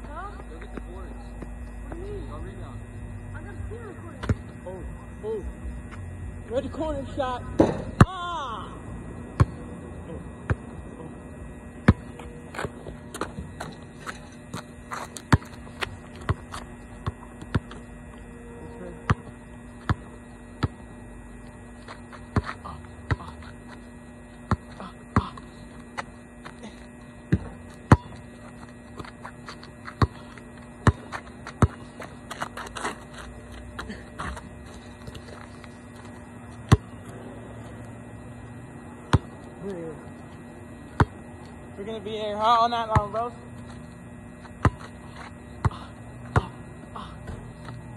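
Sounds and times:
steady low hum: 0:00.0 - 0:47.9
basketball bouncing on asphalt: 0:03.4 - 0:04.6, 0:06.8 - 0:08.2, 0:09.3 - 0:09.7, 0:10.4 - 0:10.8, 0:11.8 - 0:18.3, 0:19.0 - 0:39.8, 0:40.7 - 0:47.9.

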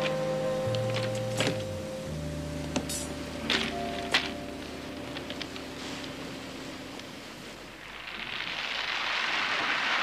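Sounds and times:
soft held music chords: 0:00.0 - 0:07.8.

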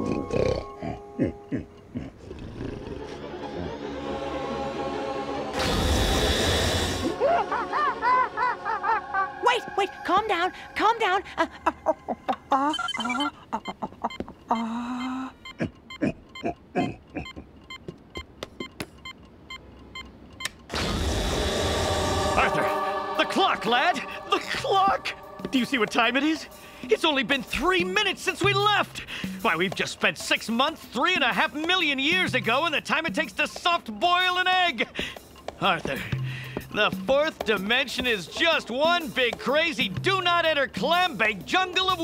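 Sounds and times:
low rumbling drone: 0:03.0 - 0:12.3, 0:20.7 - 0:28.0
cartoon music: 0:07.0 - 0:14.1, 0:20.7 - 0:29.4
short electronic beeps: 0:12.7 - 0:13.3
loud rushing whoosh: 0:20.8 - 0:27.0.

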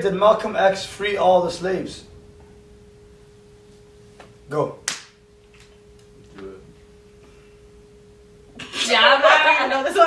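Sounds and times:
faint steady pure tone: 0:00.0 - 0:10.0.

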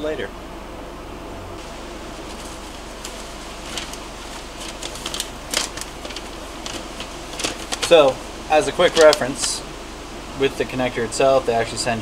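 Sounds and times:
electric fan humming: 0:00.0 - 0:12.0
paper rustling: 0:01.6 - 0:08.2, 0:08.8 - 0:09.6.

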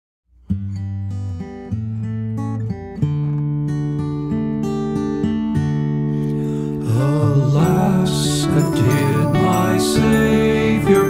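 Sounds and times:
acoustic guitar picking: 0:00.4 - 0:11.0.

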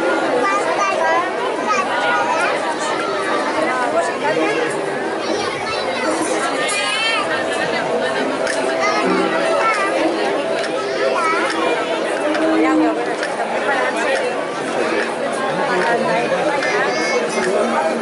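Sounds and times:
crowd chatter: 0:00.0 - 0:18.0.

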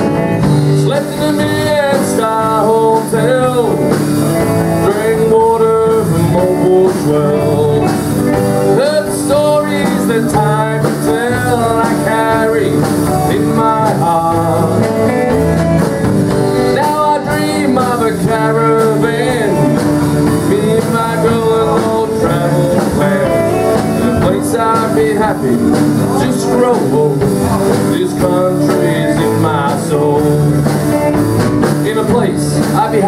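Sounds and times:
live country band playing: 0:00.0 - 0:33.0.

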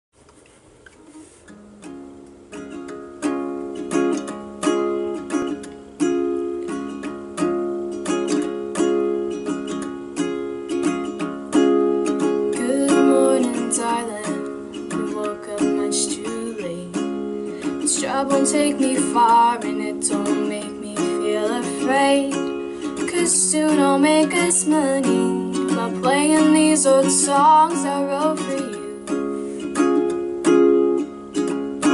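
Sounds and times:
ukulele strumming: 0:00.8 - 0:31.9.

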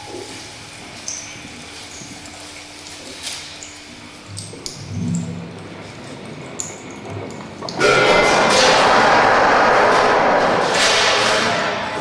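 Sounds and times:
dense wash of noise music: 0:07.8 - 0:12.0.

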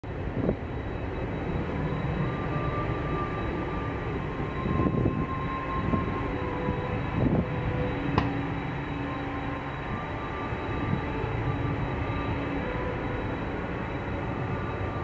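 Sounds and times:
jet engines running: 0:00.0 - 0:15.0.

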